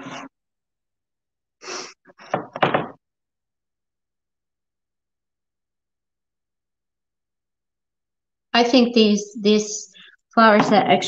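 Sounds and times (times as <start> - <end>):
knocks on wooden table: 2.3 - 3.0.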